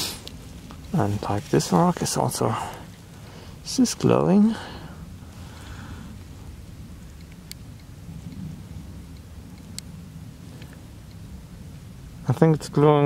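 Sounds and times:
wind buffeting microphone: 4.6 - 13.0.

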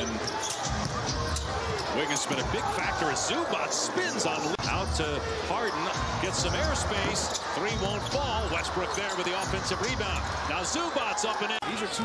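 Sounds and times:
crowd murmur: 0.0 - 12.0.

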